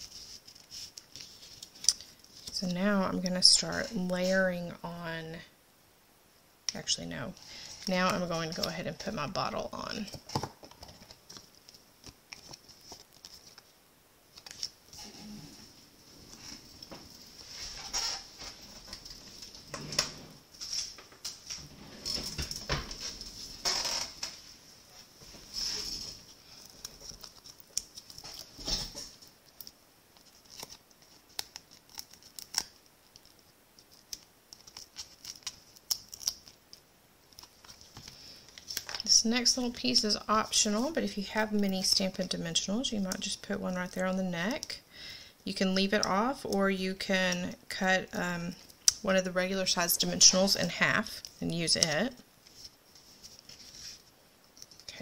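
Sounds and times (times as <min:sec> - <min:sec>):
paper rustles and scrapes: 0:00.0 - 0:02.6, 0:24.5 - 0:29.3, 0:52.4 - 0:54.1
faint steady hiss: 0:00.0 - 0:55.0.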